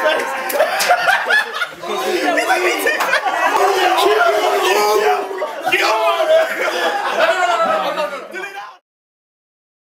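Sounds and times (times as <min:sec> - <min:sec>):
men laughing: 0:00.0 - 0:08.7
men talking over one another: 0:01.8 - 0:08.8.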